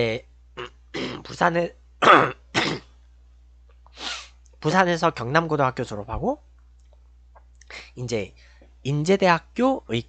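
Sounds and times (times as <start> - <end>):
man clearing his throat: 0.6 - 1.4, 2.0 - 2.9.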